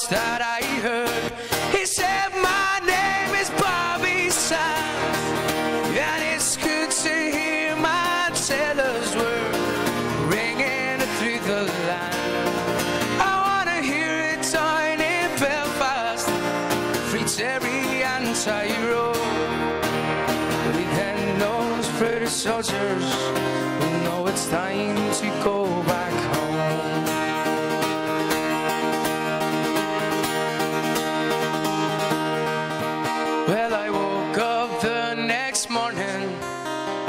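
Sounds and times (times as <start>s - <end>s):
man singing: 0.0s - 19.7s, 20.5s - 30.5s, 31.2s - 37.0s
acoustic guitar strummed: 0.0s - 37.0s.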